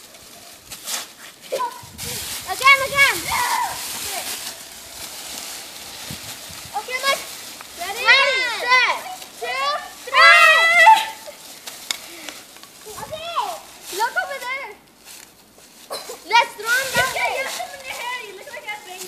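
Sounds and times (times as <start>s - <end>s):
dry leaves rustling: 0.0s - 19.0s
girls shrieking and squealing: 1.5s - 4.5s, 7.8s - 11.5s.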